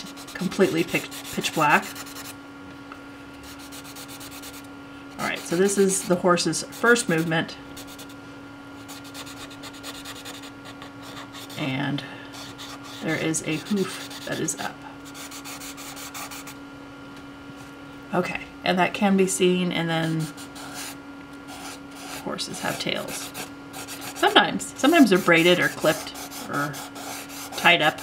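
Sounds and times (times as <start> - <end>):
charcoal scraping on paper: 0.0 - 2.3, 12.4 - 16.5
charcoal scratching on paper: 0.0 - 2.3, 3.4 - 4.6, 5.2 - 8.2, 8.9 - 11.7, 12.4 - 16.5, 20.1 - 24.4, 25.0 - 28.0.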